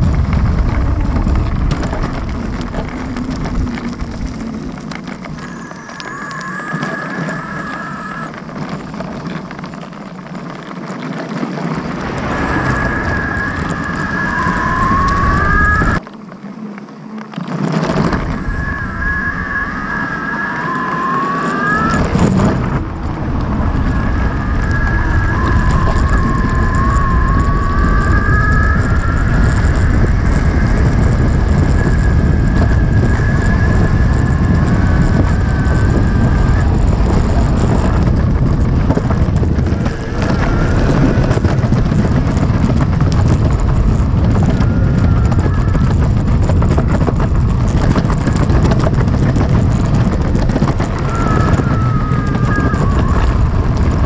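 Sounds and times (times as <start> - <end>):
electric motor whining: 0.0 - 9.8, 11.6 - 16.0, 16.6 - 54.0
tyres rumbling on road: 0.0 - 54.0.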